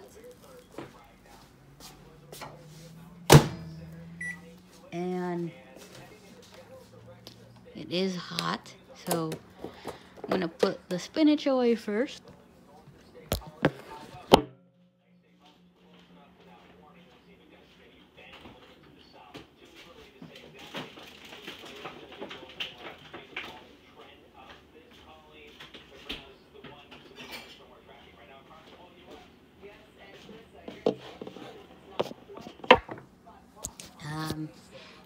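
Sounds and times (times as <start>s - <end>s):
dishes and utensils clattering: 26.7s - 27.7s.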